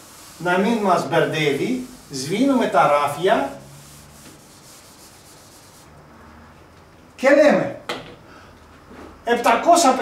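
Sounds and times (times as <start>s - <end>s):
eraser rubbing whiteboard: 0.0s - 5.9s.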